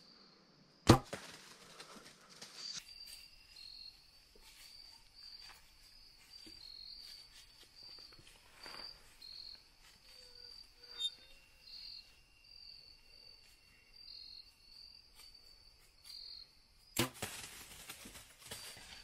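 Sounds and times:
insects chirping: 0.0 - 19.0.

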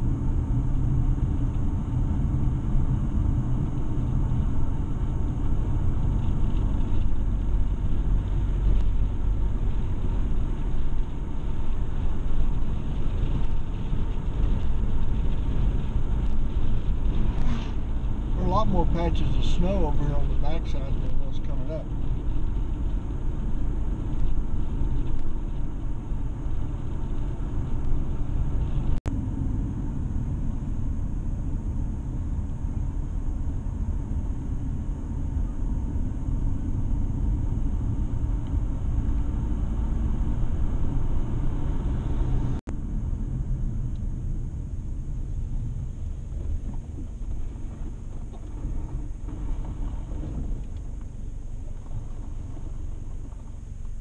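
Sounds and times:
car engine and tyre noise: 0.0 - 54.0.

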